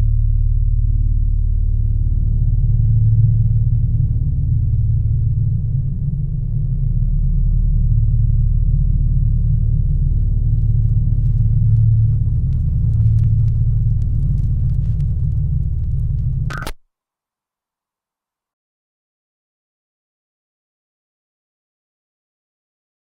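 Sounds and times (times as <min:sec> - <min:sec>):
deep rumbling drone: 0:00.0 - 0:16.7
faint crackling clicks: 0:10.2 - 0:16.8.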